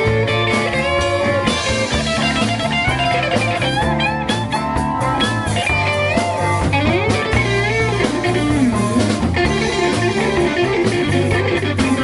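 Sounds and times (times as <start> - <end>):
bass guitar: 0.0 - 12.0
drum kit: 0.0 - 12.0
electric guitar lead: 0.0 - 12.0.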